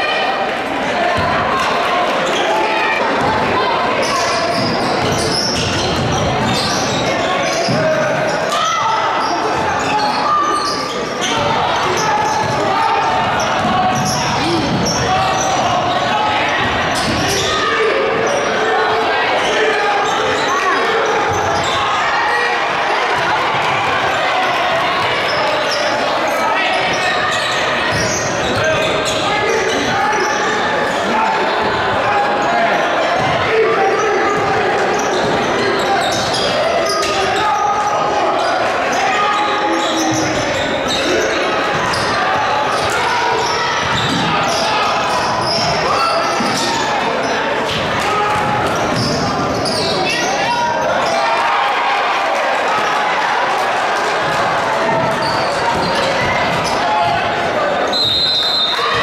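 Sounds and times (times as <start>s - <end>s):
indistinct voices: 0.0s - 59.0s.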